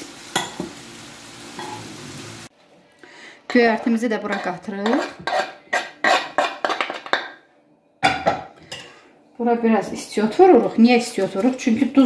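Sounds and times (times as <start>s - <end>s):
metal spoon scraping metal pot: 4.2s - 7.2s.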